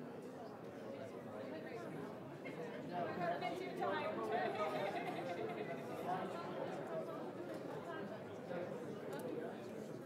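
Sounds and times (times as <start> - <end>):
chatter of many people: 0.0 - 10.0.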